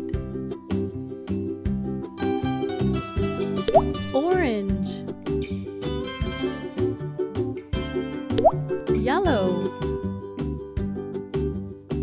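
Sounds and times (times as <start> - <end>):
children's music with steady beat: 0.0 - 12.0.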